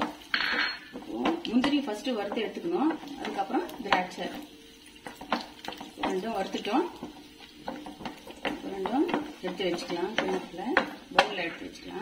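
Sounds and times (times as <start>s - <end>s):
wooden spatula knocking and scraping pan: 0.0s - 12.0s.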